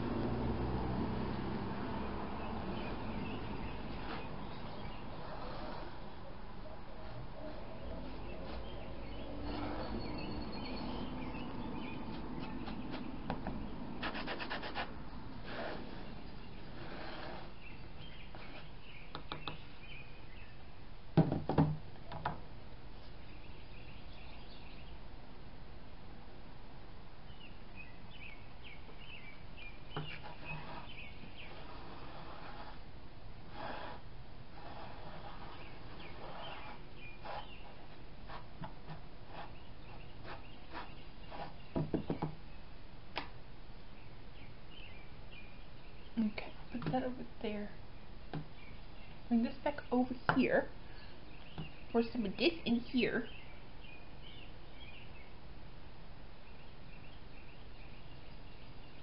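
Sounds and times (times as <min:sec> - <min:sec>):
birds chirping faintly: 0:00.0 - 0:59.0
stick scraping paint on canvas: 0:03.4 - 0:06.1, 0:12.1 - 0:18.8, 0:29.9 - 0:32.9, 0:33.5 - 0:42.4.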